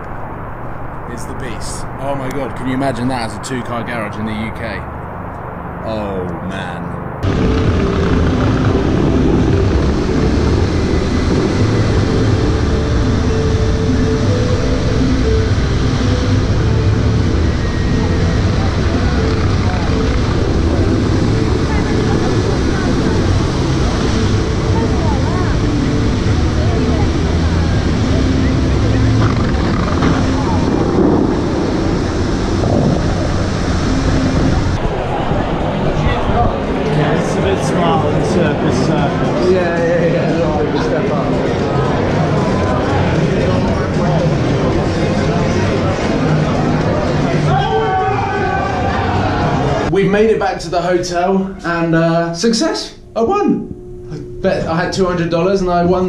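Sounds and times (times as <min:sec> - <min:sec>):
fountain water jets rushing: 0:07.2 - 0:35.8
wind on microphone: 0:07.2 - 0:39.4
voices of onlookers: 0:14.8 - 0:50.0.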